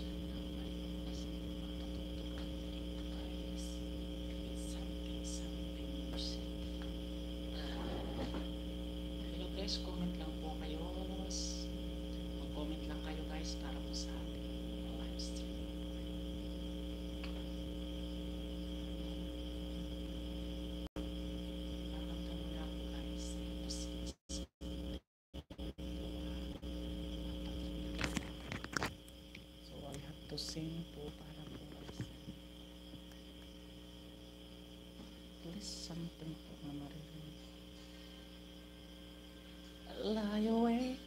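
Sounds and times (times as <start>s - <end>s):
high-pitched drone: 0.0s - 8.4s
electrical mains hum: 0.0s - 41.0s
thin high whine: 0.0s - 41.0s.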